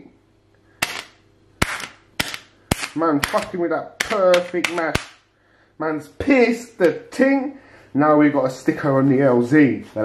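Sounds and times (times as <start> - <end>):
sharp pops: 0.8 - 5.3.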